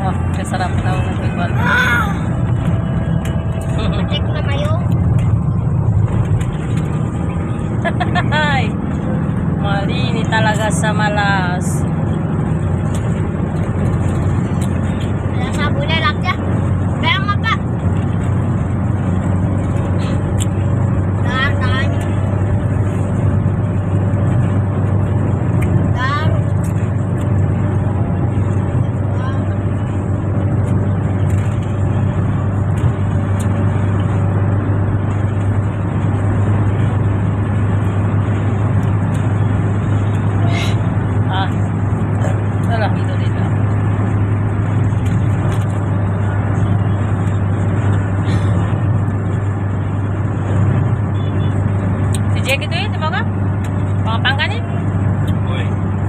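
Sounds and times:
van engine and road drone: 0.0s - 56.0s.

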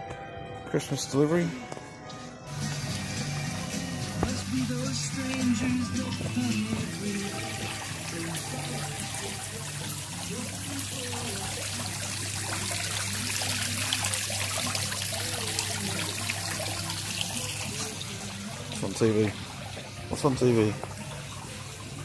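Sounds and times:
fountain water splashing: 6.6s - 22.0s.

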